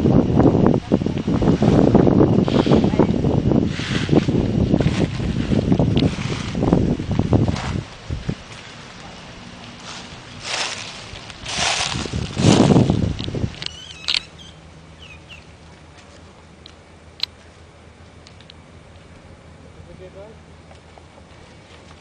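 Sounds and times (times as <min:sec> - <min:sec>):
wind buffeting microphone: 0:00.0 - 0:15.6
footsteps crunching dry leaves: 0:03.6 - 0:14.5
short high chirps: 0:13.7 - 0:15.5.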